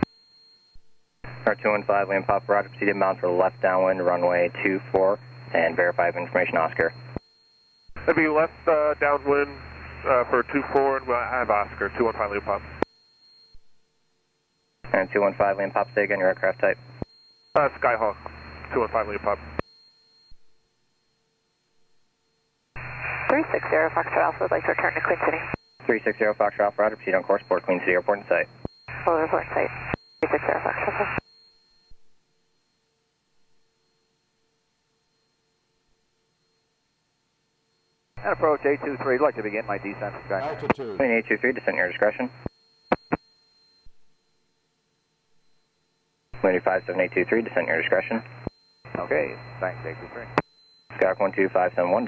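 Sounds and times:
faint steady tone: 0.0s - 52.0s
radio transmission: 1.3s - 7.2s, 8.0s - 12.8s, 14.9s - 17.0s, 17.6s - 19.6s, 22.8s - 31.2s, 38.2s - 43.2s, 46.4s - 52.0s
person speaking over radio: 23.3s - 31.1s, 38.2s - 42.3s, 46.4s - 48.2s, 48.9s - 50.4s, 51.0s - 52.0s.

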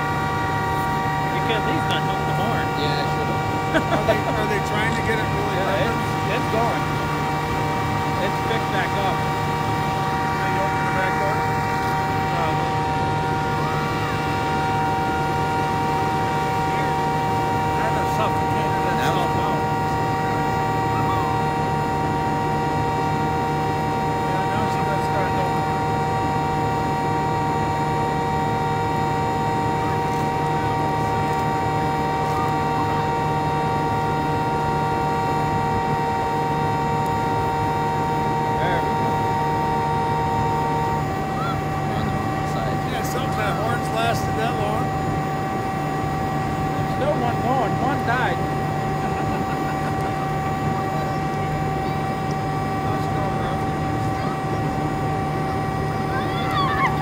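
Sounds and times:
engine droning with whine: 0.0s - 57.0s
faint voices: 46.6s - 57.0s.

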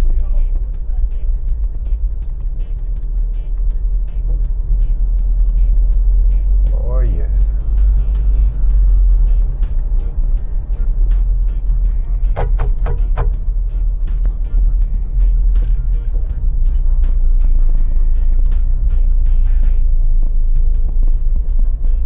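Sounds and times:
car driving low rumble: 0.0s - 22.0s
faint street sounds: 0.0s - 22.0s.

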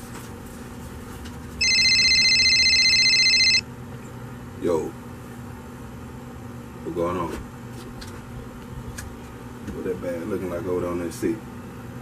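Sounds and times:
electronic telephone ring: 1.6s - 3.6s.

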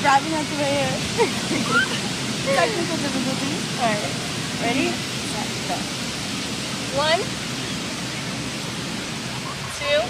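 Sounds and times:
rushing beach noise: 0.0s - 10.0s.

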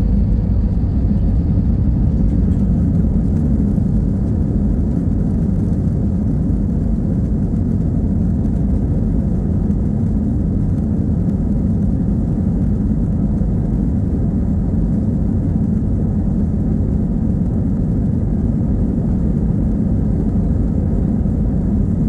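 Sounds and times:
jet engines rumbling: 0.0s - 22.0s.

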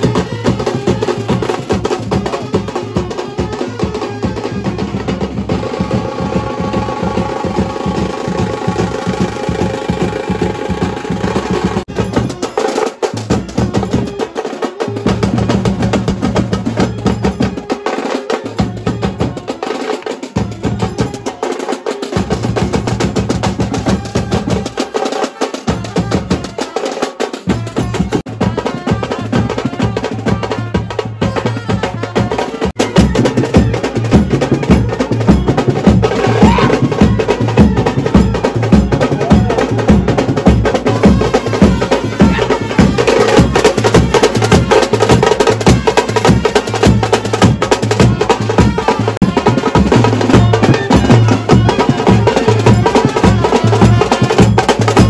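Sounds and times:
bass drum: 0.0s - 12.5s, 27.5s - 55.0s
snare drum rolls: 0.0s - 55.0s
trumpet melody: 0.0s - 55.0s.

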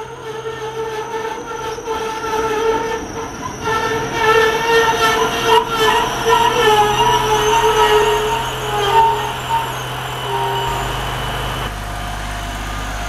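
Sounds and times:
high-pitched brake squeal: 0.0s - 11.7s
diesel railcar slowing: 0.0s - 13.0s.

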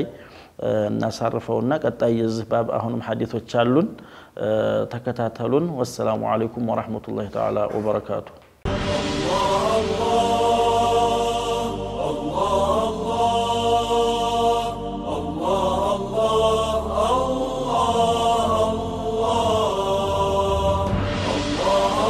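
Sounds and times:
chanted vocal music: 8.6s - 22.0s.

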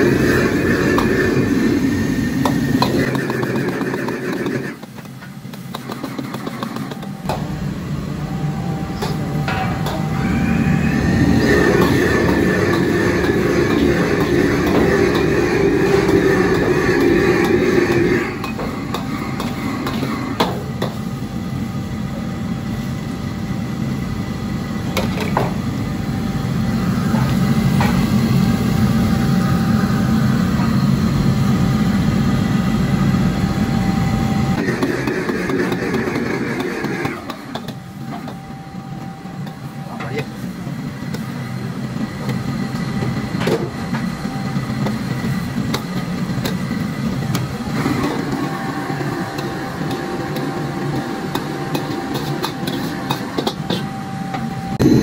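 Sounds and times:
gas burner roaring: 0.0s - 55.0s
ladle scraping and knocking wok: 48.0s - 53.9s.

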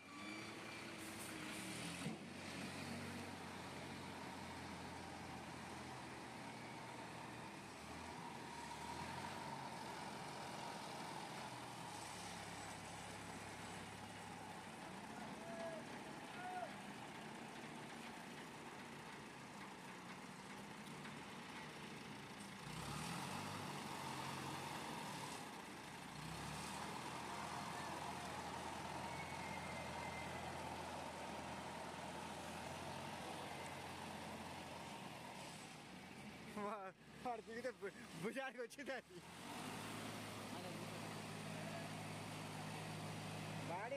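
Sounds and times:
diesel crane engine running: 0.4s - 37.2s.

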